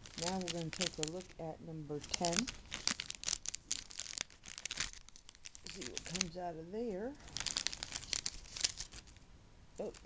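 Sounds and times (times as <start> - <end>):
plastic bag crinkling: 0.0 - 9.2, 9.8 - 10.0.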